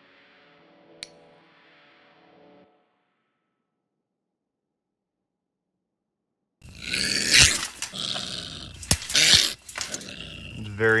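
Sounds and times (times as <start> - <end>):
dog growling and snarling: 6.6 - 11.0.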